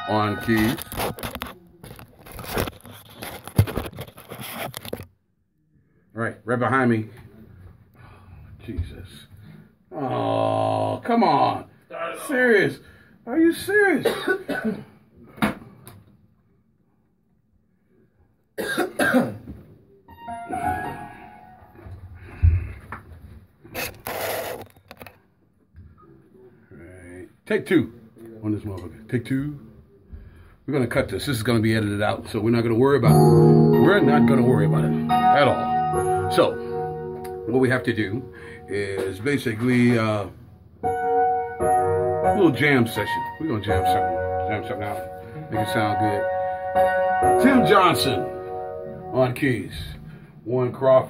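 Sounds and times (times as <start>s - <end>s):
scattered instrument notes: 0.0s - 1.5s, 33.0s - 38.9s, 40.8s - 49.7s
man coughing: 14.0s - 15.0s, 18.6s - 19.5s
fingers rubbing phone microphone: 23.8s - 24.7s.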